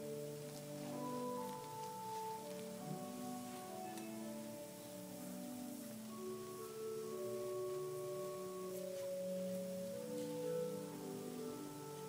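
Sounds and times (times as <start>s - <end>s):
soft organ chords: 0.0s - 12.0s.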